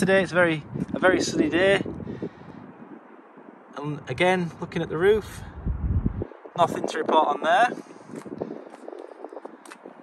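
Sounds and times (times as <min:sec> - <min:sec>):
footsteps on rough tarmac: 0:07.6 - 0:10.0.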